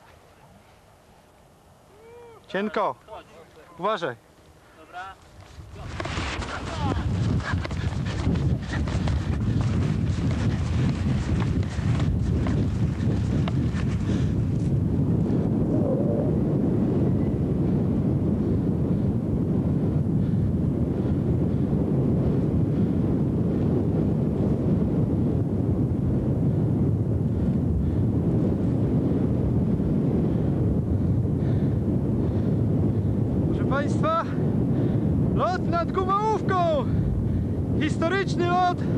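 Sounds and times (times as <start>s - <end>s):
wind buffeting microphone: 3.6s - 38.9s.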